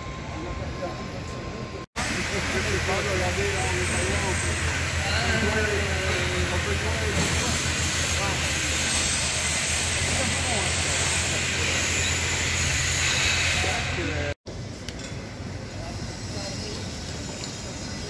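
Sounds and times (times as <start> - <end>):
loud hiss: 2.0 - 14.4.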